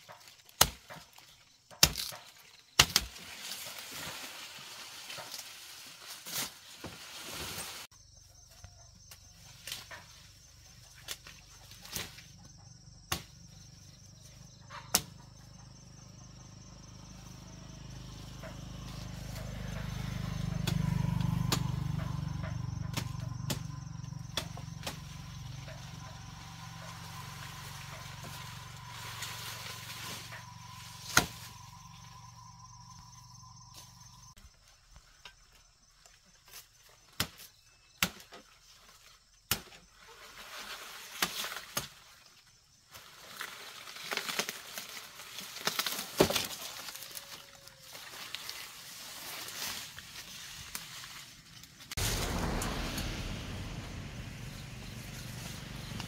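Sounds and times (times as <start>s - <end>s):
blade striking sugarcane: 0.1s - 3.7s, 13.1s - 13.4s, 14.9s - 15.1s, 20.3s - 25.4s, 27.4s - 31.6s, 37.1s - 38.4s, 39.5s - 39.9s, 41.1s - 42.0s, 45.6s - 46.6s
low steady drone: 52.0s - 56.0s.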